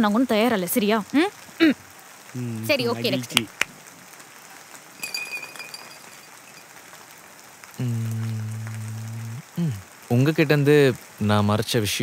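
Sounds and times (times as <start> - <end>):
steady faint hiss: 0.0 - 12.0
man humming a long note: 7.8 - 9.8.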